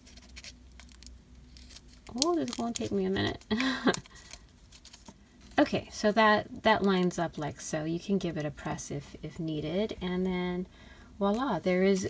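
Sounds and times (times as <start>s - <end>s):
paper rustling and scratching: 0.0s - 5.7s.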